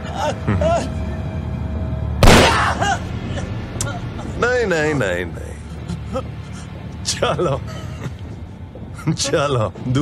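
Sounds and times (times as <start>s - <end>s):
gunshot with echo: 2.2s - 2.8s.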